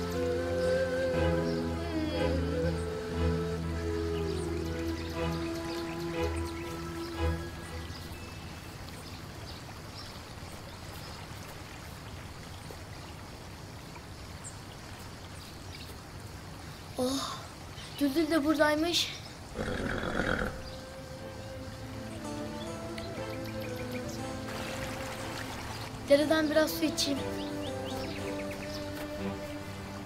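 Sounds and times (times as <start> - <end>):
background music of held notes: 0.0 - 9.2, 20.5 - 30.0
stream running over stones: 0.0 - 30.0.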